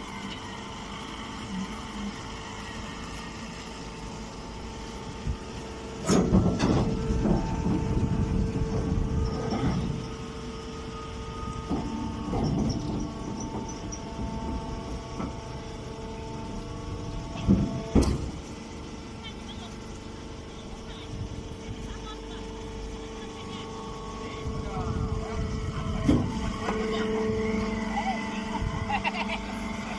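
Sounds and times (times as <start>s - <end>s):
hydraulic power unit humming: 0.0s - 29.9s.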